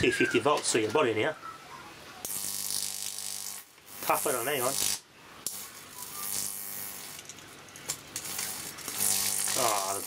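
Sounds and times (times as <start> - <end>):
sharp arc crack: 2.2 - 7.3, 7.9 - 10.0
mains buzz: 2.2 - 7.4, 8.1 - 10.0
high-voltage arc buzzing and crackling: 2.2 - 10.0.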